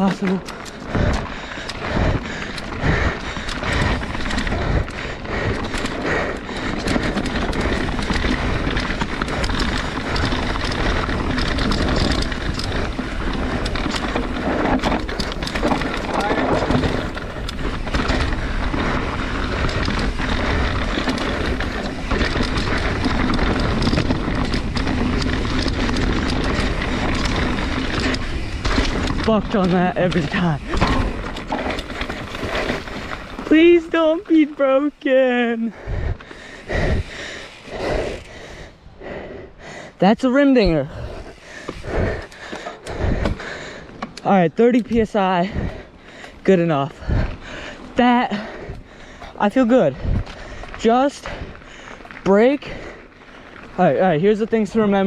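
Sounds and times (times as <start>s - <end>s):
bike chain and frame rattle: 0.0s - 55.0s
wind and tyre noise: 0.0s - 55.0s.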